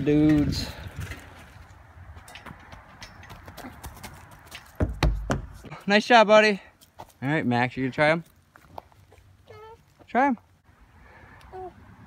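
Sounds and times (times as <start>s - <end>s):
loud thump: 4.8s - 5.6s.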